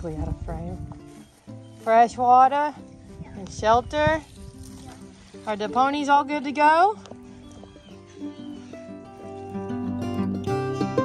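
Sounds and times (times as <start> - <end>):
plucked string music: 8.0 - 11.0.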